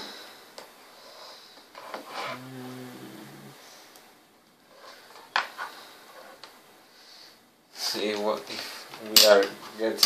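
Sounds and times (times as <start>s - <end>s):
person humming low: 2.2s - 3.6s.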